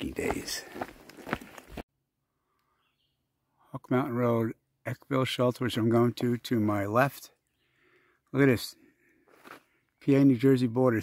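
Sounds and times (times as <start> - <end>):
footsteps on gravel: 0.0 - 1.8, 9.3 - 9.6.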